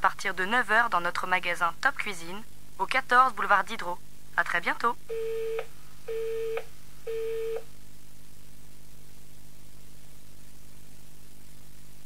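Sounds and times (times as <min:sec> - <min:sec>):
telephone busy tone beeps: 0:05.1 - 0:07.7.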